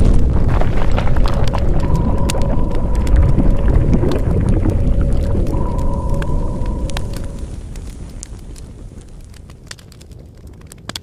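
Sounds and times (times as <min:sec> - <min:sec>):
deep rumble: 0:00.0 - 0:09.5
crackles: 0:00.0 - 0:11.0
held tones: 0:01.6 - 0:07.6.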